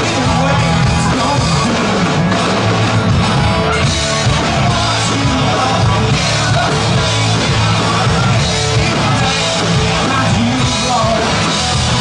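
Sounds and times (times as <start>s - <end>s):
amplified guitar: 0.0s - 12.0s
drum kit: 0.0s - 12.0s.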